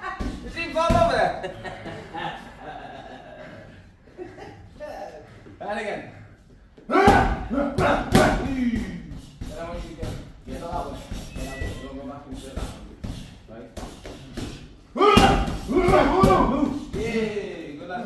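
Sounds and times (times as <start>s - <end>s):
men calling out: 6.8s - 9.1s, 14.9s - 17.6s
boxing gloves hitting mitts: 12.4s - 17.3s.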